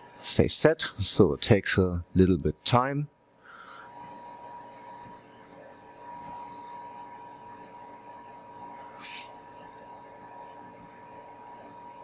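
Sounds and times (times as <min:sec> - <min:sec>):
faint equipment hum and hiss: 0:00.0 - 0:12.0
thin steady whine: 0:00.0 - 0:12.0.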